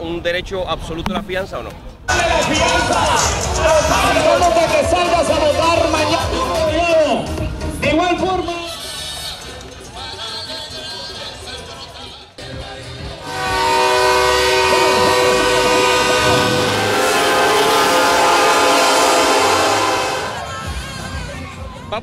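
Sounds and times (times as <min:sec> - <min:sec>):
truck air horns blowing: 0:13.2 - 0:20.5.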